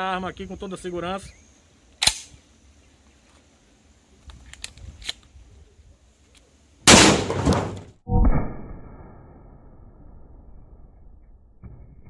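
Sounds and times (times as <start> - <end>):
shotgun loading clicks: 2.0 - 2.4, 4.2 - 5.4
shotgun blast: 6.9 - 8.9.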